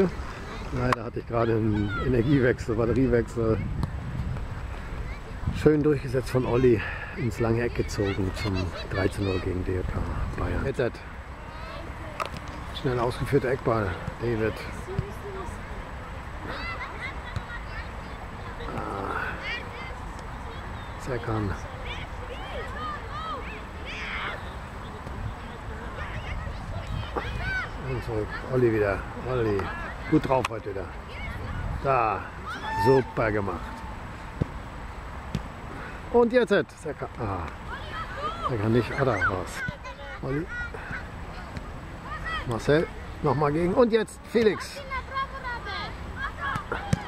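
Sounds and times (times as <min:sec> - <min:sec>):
children shouting: 0:22.0 - 0:24.6, 0:26.0 - 0:27.9, 0:32.2 - 0:34.2, 0:37.7 - 0:42.6
person shouting a call: 0:32.4 - 0:34.0.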